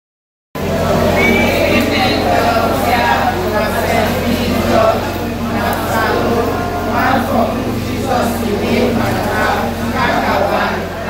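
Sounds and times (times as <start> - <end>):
steady low hum: 0.6 - 11.0
women's voices in unison: 0.6 - 11.0.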